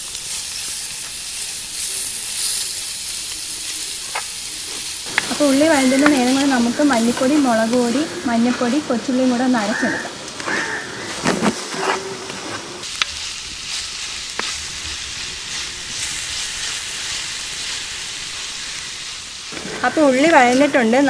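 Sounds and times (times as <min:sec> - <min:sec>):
shallots and chillies sizzling: 0:00.0 - 0:12.0, 0:12.8 - 0:21.0.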